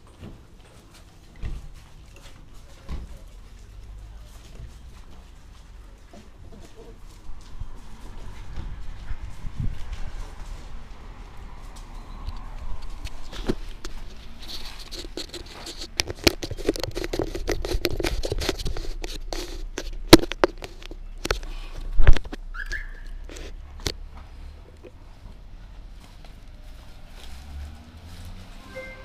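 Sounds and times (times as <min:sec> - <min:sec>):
camera handling rubbing and scraping: 0:12.8 - 0:22.4.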